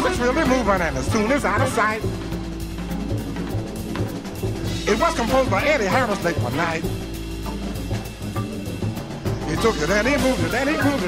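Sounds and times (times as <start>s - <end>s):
drum kit pattern: 0.0s - 11.0s
jazz band instrumental: 0.0s - 11.0s.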